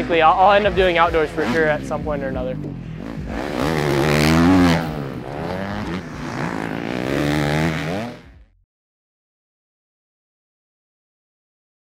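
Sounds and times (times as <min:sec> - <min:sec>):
motocross bike engine revving: 0:00.0 - 0:08.6.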